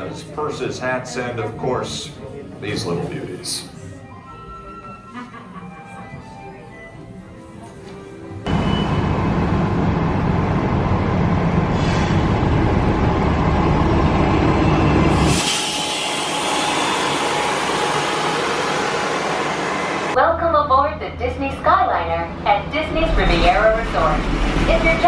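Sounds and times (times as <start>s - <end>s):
bus driving past: 8.5s - 15.4s, 23.0s - 25.0s.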